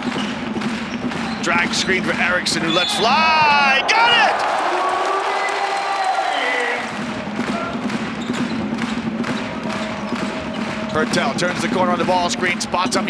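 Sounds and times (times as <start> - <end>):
ball bouncing on hardwood court: 0.0 - 2.7, 7.0 - 13.0
music from arena speakers: 0.0 - 3.7, 6.0 - 13.0.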